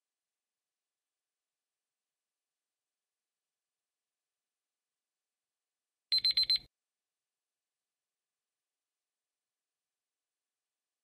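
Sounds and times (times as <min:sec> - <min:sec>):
timer alarm beeping: 0:06.1 - 0:06.7.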